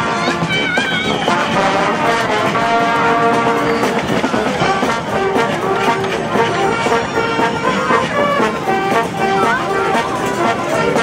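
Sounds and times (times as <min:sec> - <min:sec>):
brass band playing: 0:00.0 - 0:11.0.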